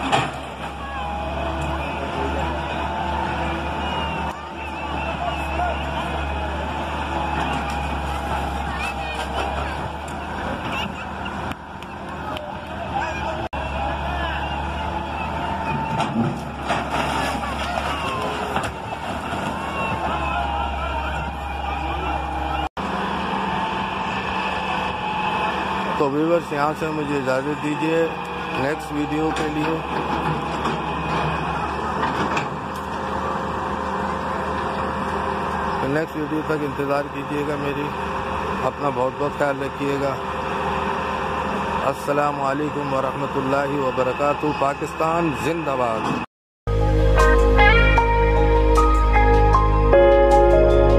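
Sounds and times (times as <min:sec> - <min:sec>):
excavator diesel engine running: 0:00.0 - 0:50.9.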